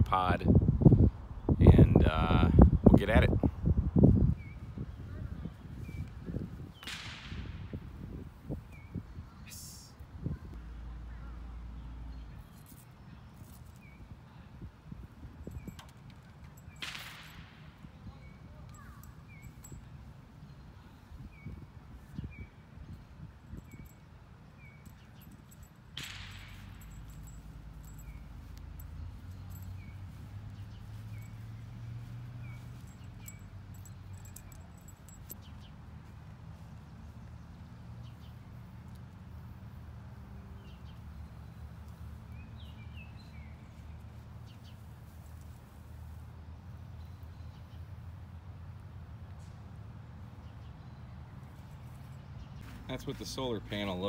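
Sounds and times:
small bird chirping: 18.0 - 25.8, 26.5 - 35.8.

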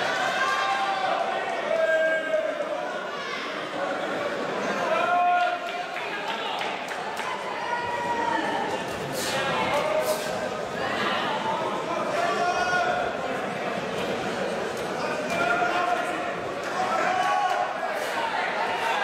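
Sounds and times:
spectators shouting: 15.0 - 19.0.

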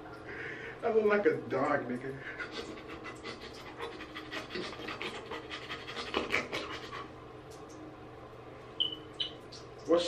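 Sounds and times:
man imitating dog panting: 2.2 - 6.9.

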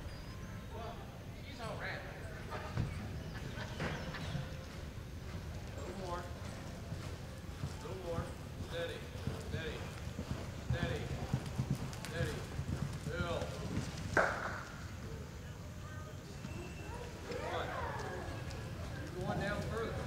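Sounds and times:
people's voices: 0.6 - 20.0
horse hoofbeats on soft dirt: 2.5 - 14.9, 16.2 - 20.0.

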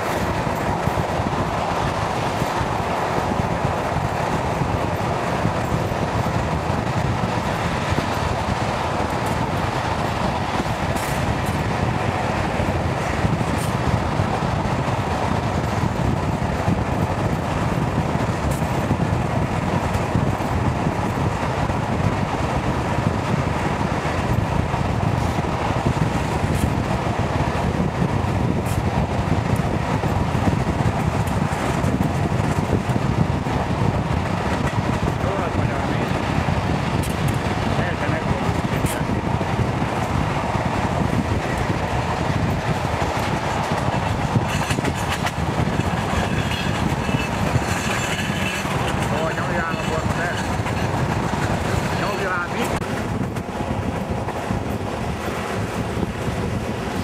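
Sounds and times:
air rushing: 0.0 - 57.0
train wheels rumbling on track: 0.0 - 57.0.

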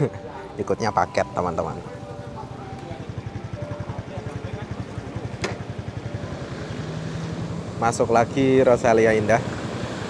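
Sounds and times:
engine idling: 0.0 - 9.4.

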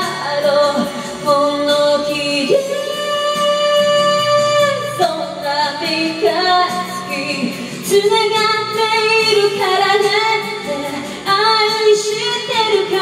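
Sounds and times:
music accompaniment: 0.0 - 13.0
woman singing into microphone: 0.0 - 13.0.

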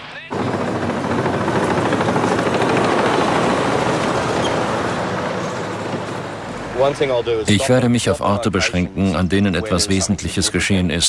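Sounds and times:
heavy vehicle engine rumble: 1.3 - 7.5.

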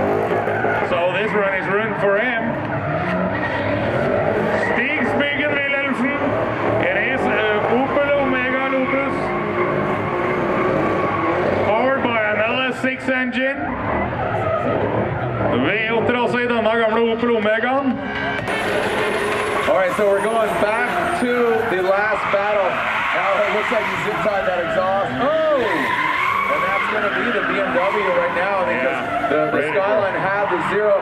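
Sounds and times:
tyres squealing: 0.0 - 16.5, 17.6 - 31.0
car engines revving hard: 0.0 - 31.0.

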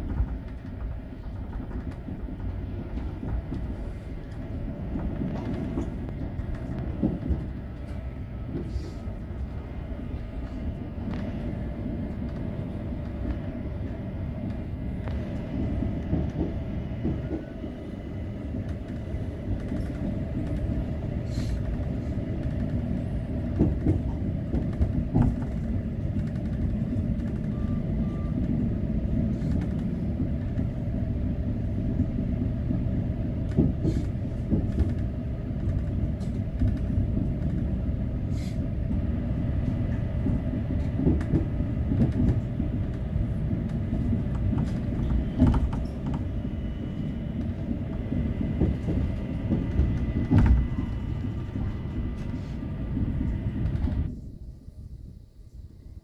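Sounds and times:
track knocks and clicks: 0.0 - 8.7, 9.4 - 31.0, 31.7 - 37.8, 38.8 - 54.2
train wheels rumbling on rail: 0.0 - 56.0.

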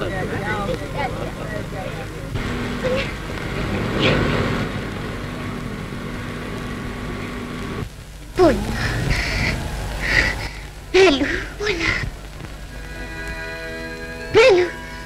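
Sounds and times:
film hiss and low rumble: 0.0 - 15.0
indistinct voices: 0.0 - 15.0
steady low tone: 0.0 - 15.0.

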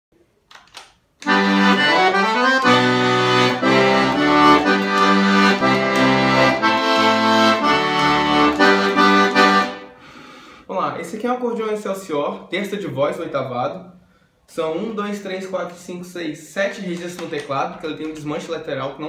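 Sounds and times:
accordion playing a tune: 1.2 - 10.0.

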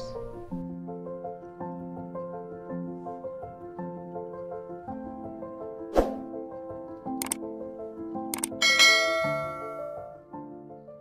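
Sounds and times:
soft piano music: 0.0 - 11.0
mouse clicks: 7.2 - 7.4, 8.3 - 8.6
bright bell chime: 8.6 - 10.0.

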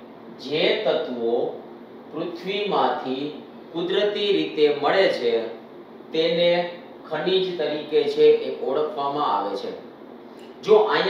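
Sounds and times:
man speaking: 0.4 - 9.9, 10.6 - 11.0.

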